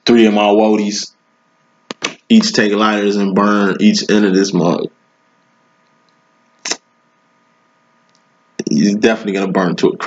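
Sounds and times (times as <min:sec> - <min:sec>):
faint electrical hum: 0:00.0 - 0:10.0
sharp click: 0:01.9 - 0:02.3.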